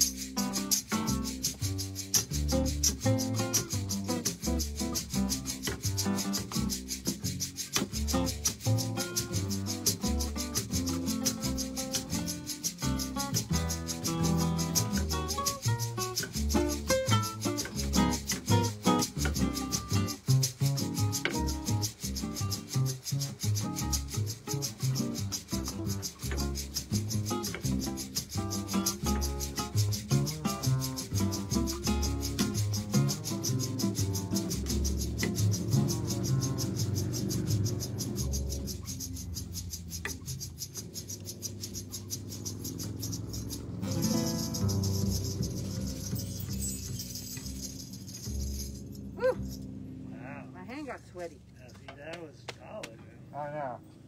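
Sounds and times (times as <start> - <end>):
shaker fast even pulse: 0.0 - 49.7
upright bass: 0.0 - 53.8
acoustic guitar: 0.0 - 54.0.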